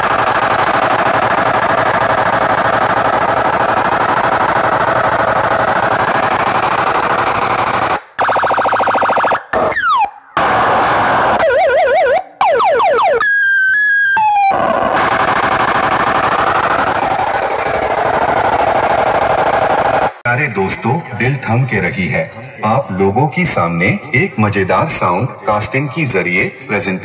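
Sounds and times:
siren-like wobbling tones: 8.2s - 20.1s
loud distorted electronic music: 20.7s - 27.0s.

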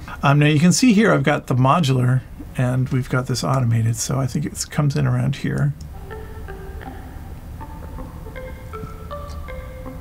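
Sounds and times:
low synth drone: 5.9s - 10.0s
synth ringing mallet notes: 5.9s - 10.0s.

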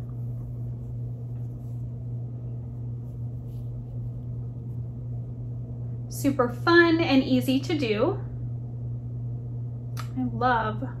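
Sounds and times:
soft rustles of knitted sock: 0.0s - 5.0s
low hum: 0.0s - 11.0s.

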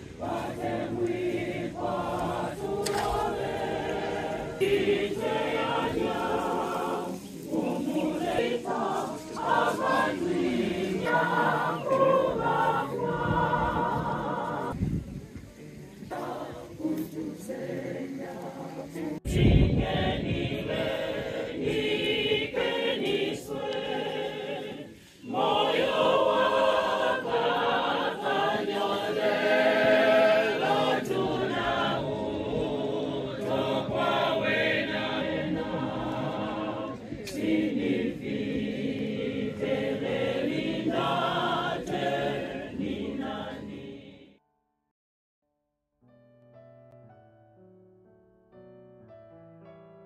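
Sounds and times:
group singing unaccompanied: 0.0s - 44.4s.

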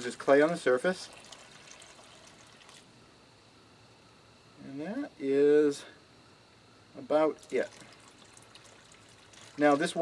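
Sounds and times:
water trickling onto soil: 0.0s - 2.9s, 7.4s - 10.0s.

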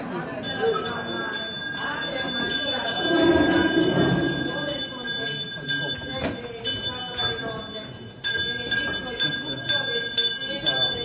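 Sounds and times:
bells ringing in a peal: 0.0s - 11.0s
murmur of voices: 0.0s - 11.0s.

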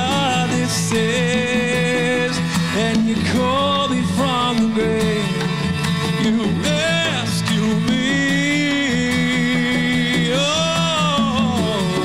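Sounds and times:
conga drums: 0.0s - 12.0s
man singing lead: 0.0s - 12.0s
strummed acoustic guitar: 0.0s - 12.0s.

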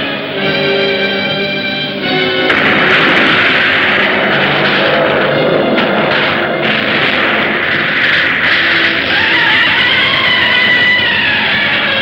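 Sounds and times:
dramatic music: 0.0s - 12.0s
destruction sound effects: 0.4s - 12.0s
crashes and booms: 2.0s - 12.0s.

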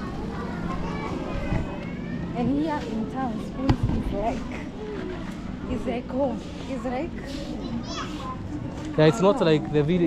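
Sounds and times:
children's chatter: 0.0s - 9.6s
busy street noise: 0.0s - 10.0s.

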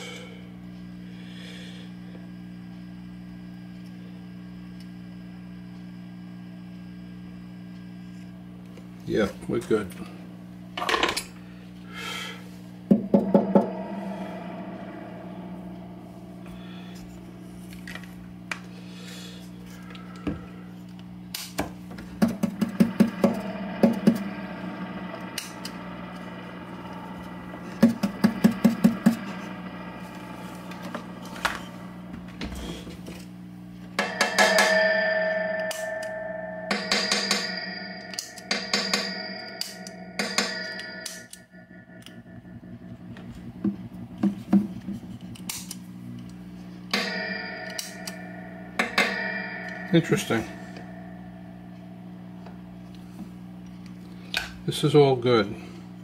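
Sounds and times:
mains hum from amplifier: 0.0s - 56.0s
metallic ringing tones: 10.8s - 56.0s.

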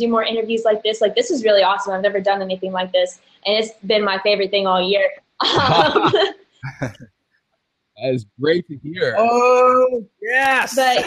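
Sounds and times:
people laughing: 5.4s - 7.0s, 10.2s - 11.0s.

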